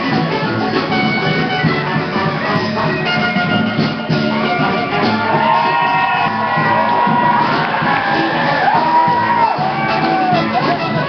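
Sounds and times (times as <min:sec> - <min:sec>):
live band playing amplified music: 0:00.0 - 0:11.0
crowd shouting and whooping: 0:04.3 - 0:11.0.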